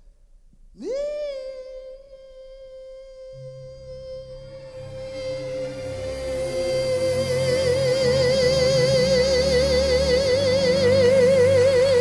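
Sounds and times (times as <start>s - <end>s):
soft orchestral accompaniment: 3.2s - 12.0s.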